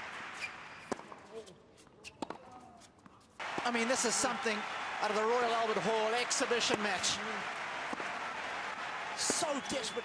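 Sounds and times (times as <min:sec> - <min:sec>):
crowd noise: 0:03.4 - 0:10.0.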